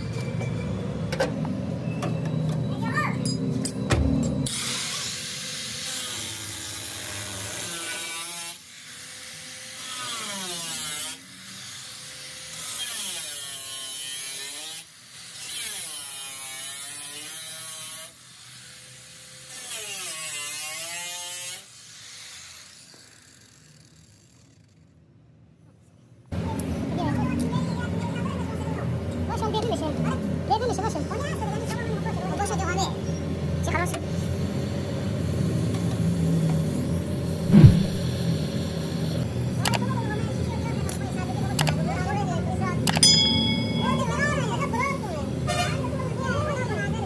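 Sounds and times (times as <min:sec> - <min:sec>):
angle grinder cutting sheet metal: 0:04.5 - 0:23.8.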